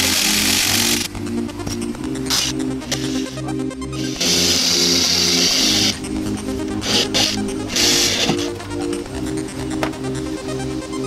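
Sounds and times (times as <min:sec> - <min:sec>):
electric drill drilling rivet: 0:00.0 - 0:01.1, 0:04.0 - 0:05.9, 0:06.8 - 0:08.5
electronic background music: 0:00.0 - 0:11.0.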